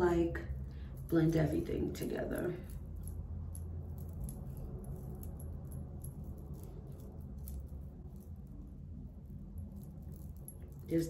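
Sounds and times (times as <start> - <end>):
low steady hum: 0.0 - 11.0
bracelets jingling: 0.6 - 11.0.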